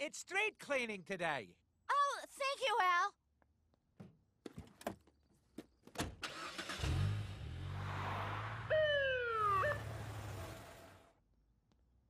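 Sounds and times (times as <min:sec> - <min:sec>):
police siren whoop: 0:08.2 - 0:10.5.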